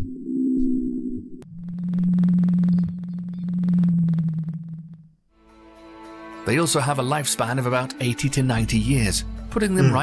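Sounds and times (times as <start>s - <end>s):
low pulsing whale call: 0.2s - 5.2s.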